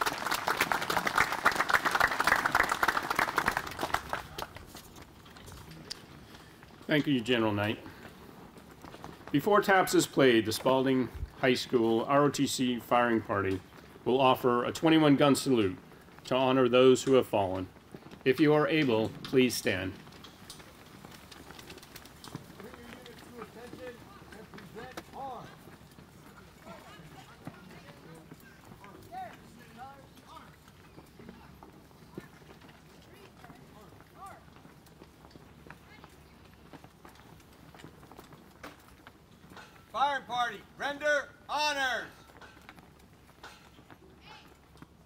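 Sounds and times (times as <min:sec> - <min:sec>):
shouted drill commands: 0:39.9 - 0:42.2.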